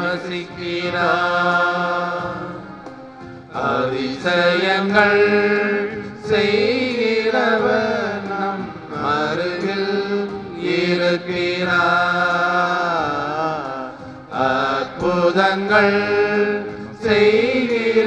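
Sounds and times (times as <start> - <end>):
person singing a devotional hymn: 0.0 - 18.0.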